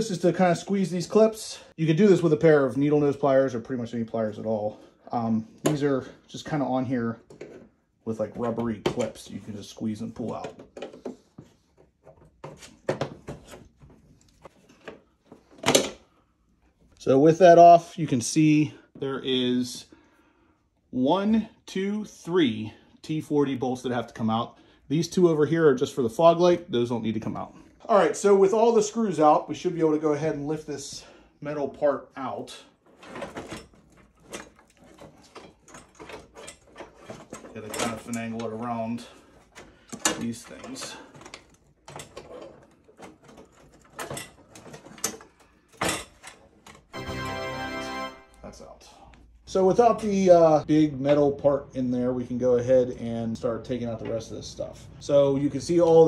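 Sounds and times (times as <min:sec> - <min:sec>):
metal clanks and scrapes: 0:32.9 - 0:38.6.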